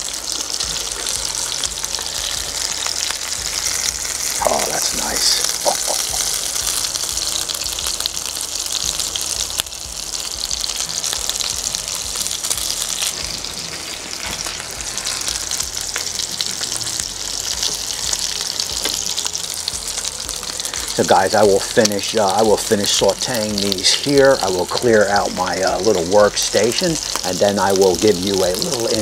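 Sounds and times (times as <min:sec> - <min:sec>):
meat sizzling in hot oil: 0:00.0 - 0:29.0.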